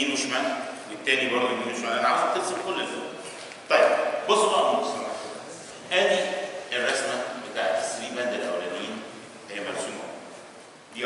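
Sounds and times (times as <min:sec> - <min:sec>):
man speaking loudly: 0:00.0 - 0:10.3.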